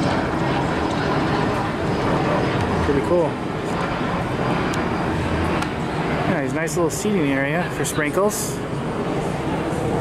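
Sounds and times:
low hum: 0:00.0 - 0:10.0
low mechanical rumble: 0:00.0 - 0:10.0.

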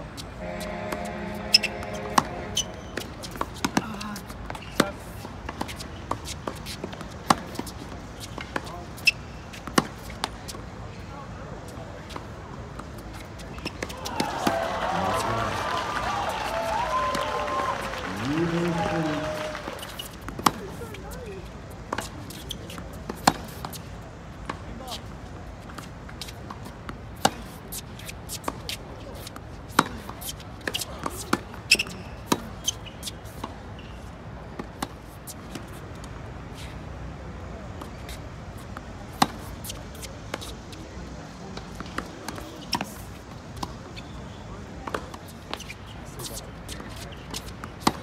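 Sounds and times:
tennis racket hitting ball: 0:00.4 - 0:04.0, 0:39.1 - 0:40.5
racket hitting tennis ball: 0:00.4 - 0:10.6, 0:19.7 - 0:20.8, 0:21.9 - 0:23.8, 0:25.7 - 0:33.6, 0:39.1 - 0:40.5, 0:44.8 - 0:48.0
tennis ball bouncing on court: 0:00.4 - 0:10.7, 0:12.0 - 0:15.4, 0:18.1 - 0:21.2, 0:21.8 - 0:24.7, 0:25.6 - 0:33.9, 0:34.5 - 0:36.1, 0:37.8 - 0:40.5, 0:41.6 - 0:44.2, 0:44.8 - 0:48.0.

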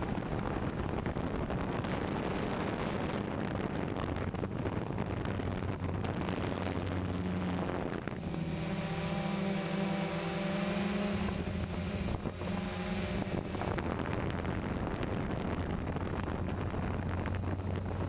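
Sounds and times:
drone propellers humming: 0:00.0 - 0:18.0
high motor whine: 0:00.0 - 0:18.0
wind noise on microphone: 0:00.0 - 0:18.0.

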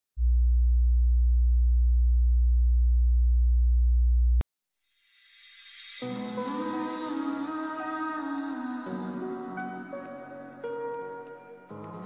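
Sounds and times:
low electronic sine tone: 0:00.2 - 0:04.4.

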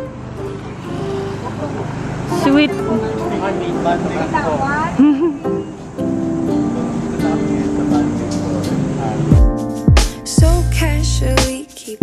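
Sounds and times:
car passing: 0:00.0 - 0:09.4.

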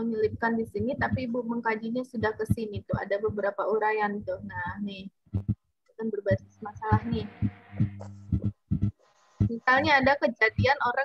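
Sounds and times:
person speaking: 0:00.0 - 0:08.5, 0:09.4 - 0:11.0
short low thuds: 0:00.3 - 0:01.4, 0:02.2 - 0:03.5, 0:04.2 - 0:05.6, 0:06.8 - 0:10.7.

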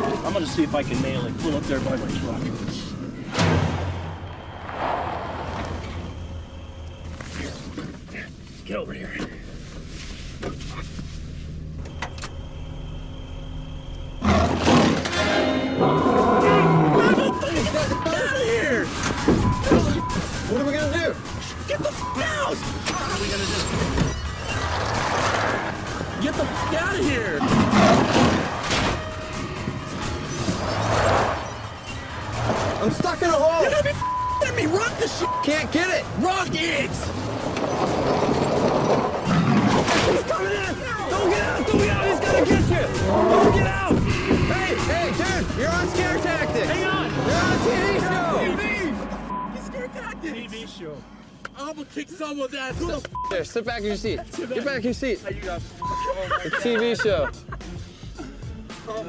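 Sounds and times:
tense background music: 0:00.0 - 0:08.4, 0:11.1 - 0:59.0
car engine rumble: 0:00.5 - 0:15.0, 0:22.3 - 0:52.0
loud bang: 0:03.3 - 0:06.2
car engine running: 0:43.7 - 0:51.6.

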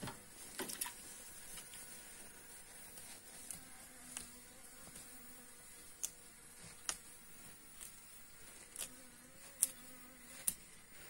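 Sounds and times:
honeybee buzzing: 0:00.2 - 0:11.0.

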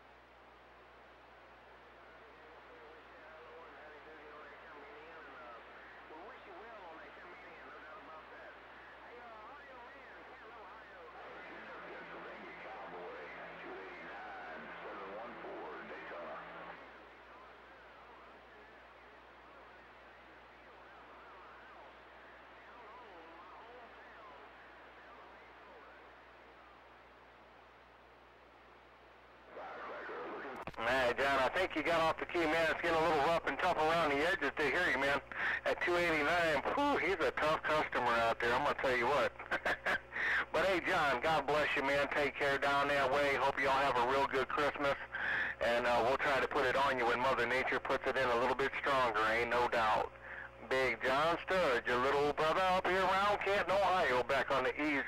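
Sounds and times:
radio static: 0:00.0 - 0:55.0
faint voice over two-way radio: 0:01.7 - 0:26.8, 0:29.5 - 0:55.0.

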